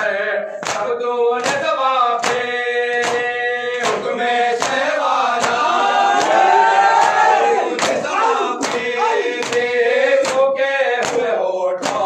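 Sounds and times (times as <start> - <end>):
men chanting in unison: 0.0 - 12.0
chest-beating slaps: 0.6 - 6.4, 7.8 - 12.0.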